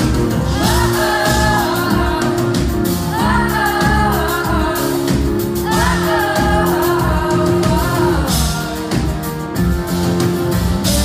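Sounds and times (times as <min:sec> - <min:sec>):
pop song with singing: 0:00.0 - 0:09.7.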